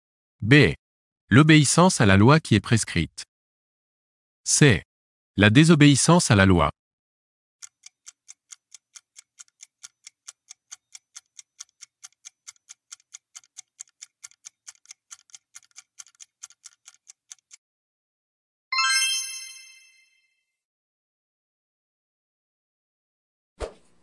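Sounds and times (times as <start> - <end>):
clock ticking: 7.6 - 17.6
bright chime: 18.7 - 20.4.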